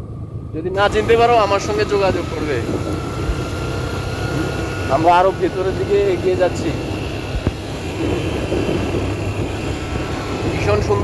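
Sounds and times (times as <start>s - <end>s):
faint steady whine: 0.0s - 11.0s
motorcycle engine running: 0.0s - 11.0s
wind and road noise: 0.0s - 11.0s.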